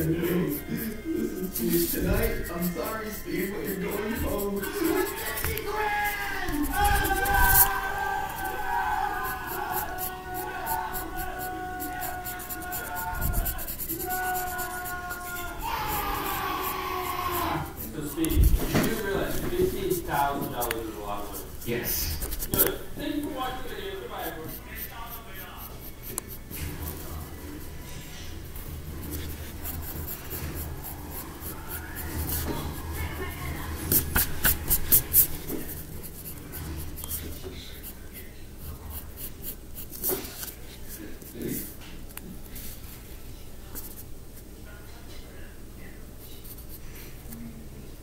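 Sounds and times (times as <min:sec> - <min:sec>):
pencil scratching on paper: 0:00.0 - 0:41.8.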